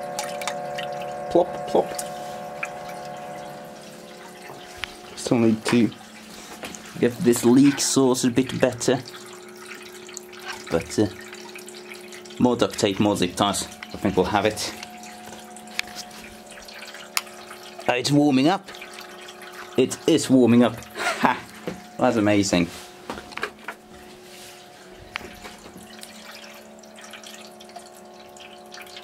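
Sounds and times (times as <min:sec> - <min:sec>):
water dripping and plopping: 0:00.0 - 0:22.3, 0:24.7 - 0:29.0
pump humming: 0:00.0 - 0:29.0.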